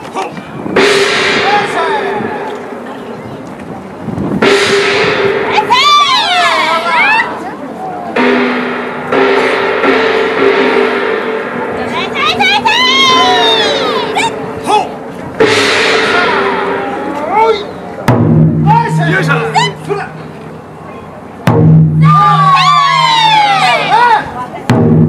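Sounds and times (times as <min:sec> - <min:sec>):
large gong struck: 0:00.7 - 0:03.0, 0:04.4 - 0:07.4, 0:08.1 - 0:20.7.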